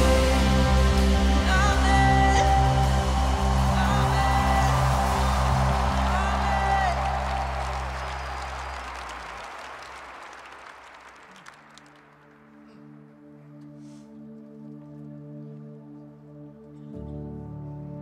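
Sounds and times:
live band music: 0:00.0 - 0:08.4
crowd cheering: 0:00.0 - 0:12.9.

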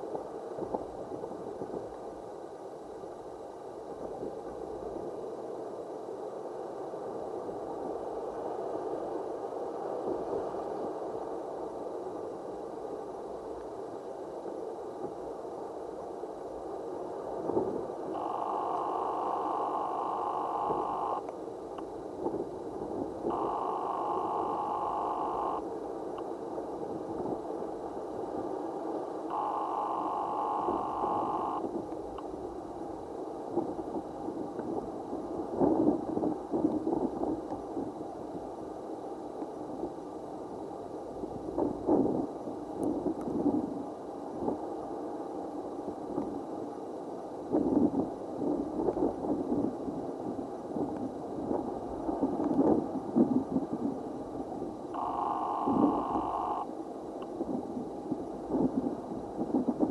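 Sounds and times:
steady two-pitch tone: 0:18.2 - 0:21.2, 0:23.3 - 0:25.6, 0:29.3 - 0:31.6, 0:55.0 - 0:56.7.

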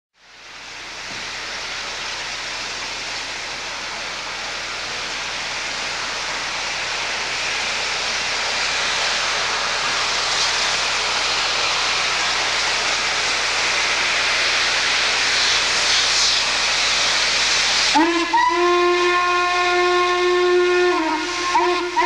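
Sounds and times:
steam locomotive hissing steam: 0:00.2 - 0:22.0.

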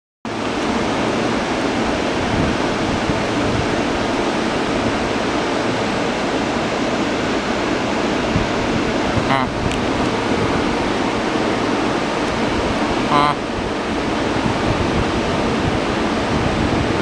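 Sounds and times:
electric train fans running: 0:00.3 - 0:17.0.

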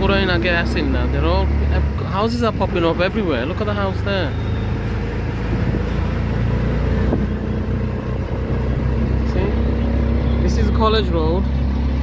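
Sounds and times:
engine drone: 0:00.0 - 0:12.0
road noise: 0:00.0 - 0:12.0.

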